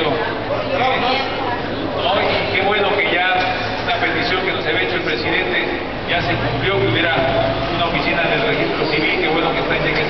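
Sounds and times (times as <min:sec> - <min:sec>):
man speaking into a microphone: 0:02.0 - 0:10.0.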